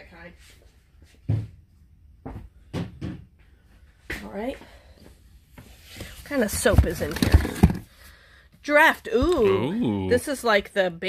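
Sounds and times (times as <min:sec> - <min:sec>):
plastic bottles knocking in box: 0:06.4 - 0:08.0.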